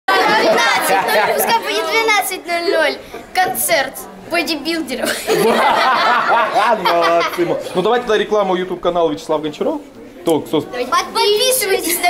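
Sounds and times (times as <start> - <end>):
girls chattering: 0.1 - 8.0, 10.0 - 12.0.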